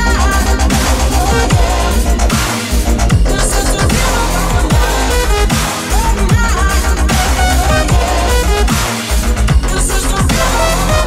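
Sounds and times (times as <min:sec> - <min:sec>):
dubstep music: 0:00.0 - 0:11.0.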